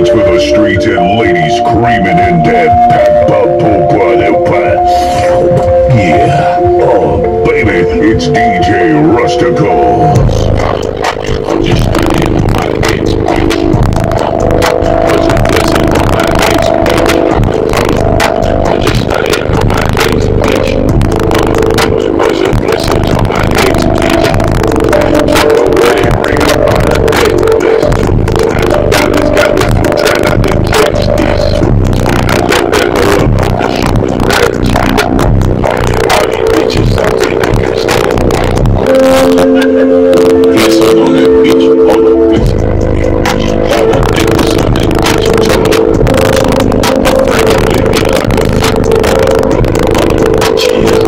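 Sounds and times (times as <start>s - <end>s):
bass-heavy music from car speakers: 0.0s - 51.0s
speaker rattling and crackling: 0.0s - 51.0s.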